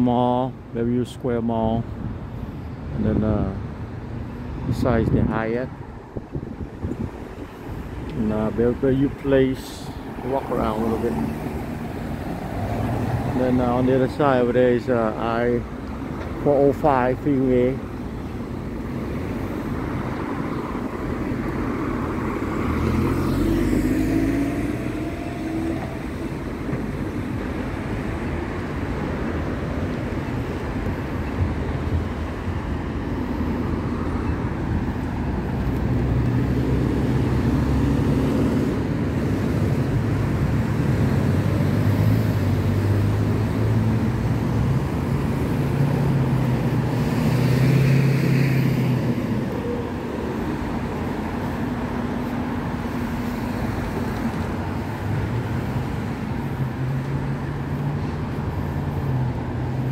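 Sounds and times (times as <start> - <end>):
cars driving past: 2.0 - 59.9.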